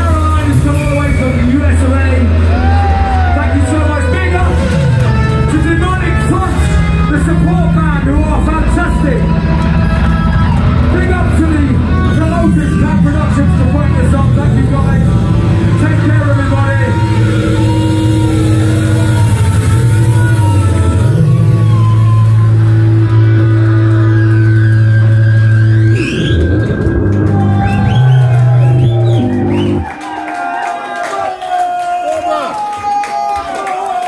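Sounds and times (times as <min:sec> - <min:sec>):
rock band playing: 0:00.0 - 0:30.1
rising swooping effect sounds: 0:16.4 - 0:29.9.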